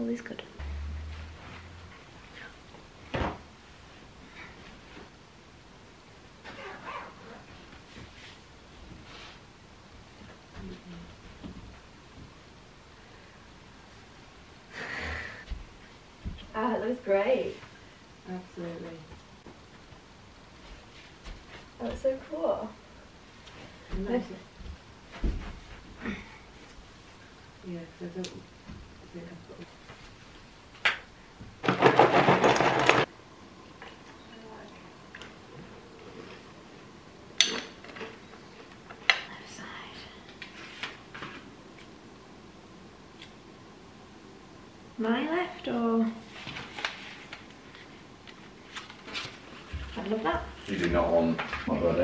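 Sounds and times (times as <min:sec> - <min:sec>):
short whine-like vocal call: 0:00.6 - 0:02.0.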